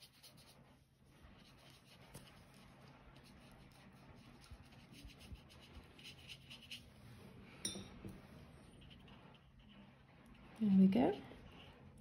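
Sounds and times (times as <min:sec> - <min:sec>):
paintbrush strokes on paper: 0:00.0 - 0:12.0.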